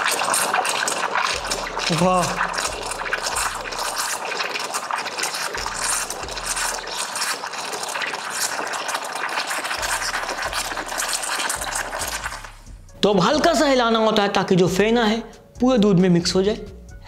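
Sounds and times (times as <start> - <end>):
steam wand frothing milk: 0.0 - 12.8.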